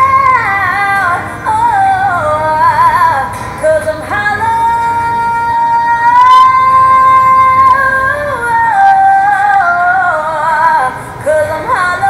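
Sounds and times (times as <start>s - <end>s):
woman singing pop song: 0.0s - 12.0s.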